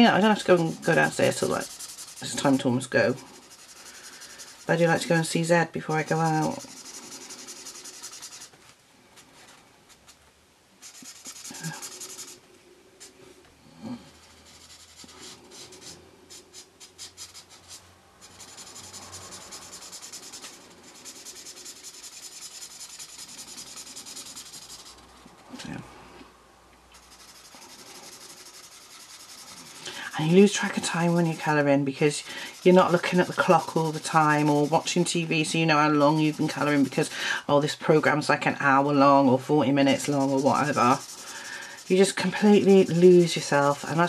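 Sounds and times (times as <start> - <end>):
marker scratching across paper: 0.1 - 5.2, 5.9 - 8.6, 10.8 - 12.4, 14.3 - 25.8, 27.0 - 37.1, 39.4 - 44.0.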